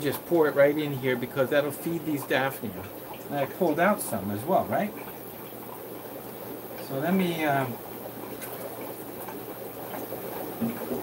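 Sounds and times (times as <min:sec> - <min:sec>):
aquarium bubbling: 0:00.0 - 0:11.0
steady background hiss: 0:00.0 - 0:11.0.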